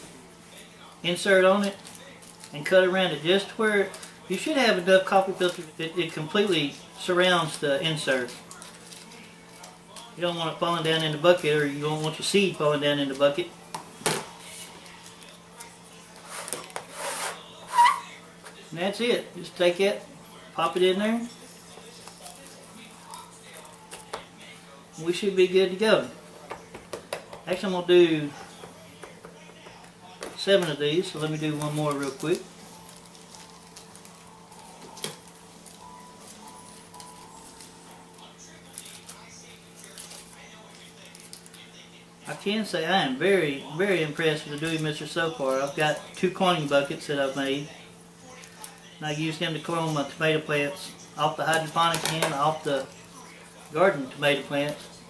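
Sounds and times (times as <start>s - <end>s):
paper filter rustling: 1.4s - 13.4s, 29.8s - 41.8s.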